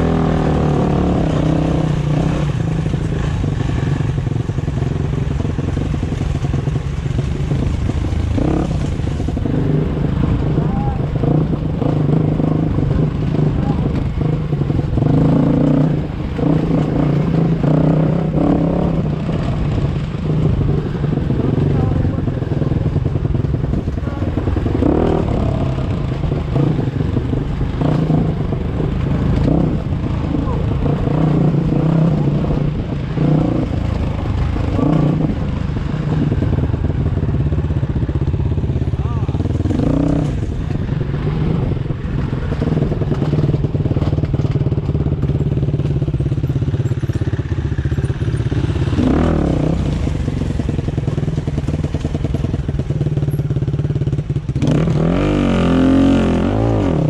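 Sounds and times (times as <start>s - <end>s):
dirt bike engines running: 0.0s - 57.0s.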